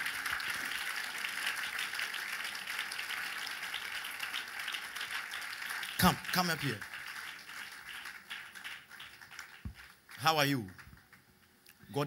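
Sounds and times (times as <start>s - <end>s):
scattered applause: 0.0s - 11.4s.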